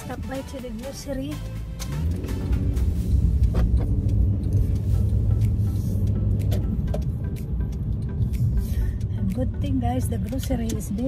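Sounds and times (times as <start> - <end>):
car engine and road rumble: 0.0 - 11.0
music playing: 0.0 - 11.0.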